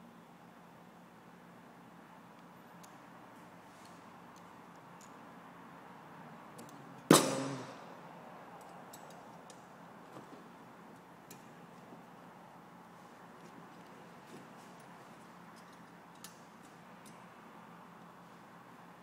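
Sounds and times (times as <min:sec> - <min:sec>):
wire handling clicks: 0:08.6 - 0:09.7, 0:14.7 - 0:17.2
bolt cutters snapping wire: 0:15.6 - 0:17.2.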